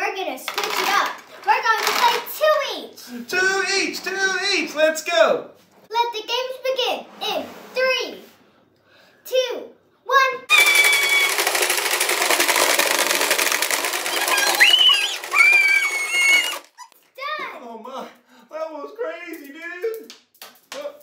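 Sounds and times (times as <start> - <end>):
marbles rattling on plastic board: 0.4 - 2.4, 10.5 - 16.8
high-pitched squeals: 10.5 - 11.8, 14.1 - 16.9.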